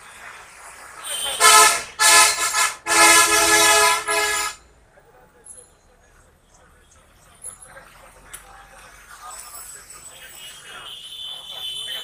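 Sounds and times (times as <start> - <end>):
vehicle horn honking: 1.0 - 4.6, 10.5 - 12.0.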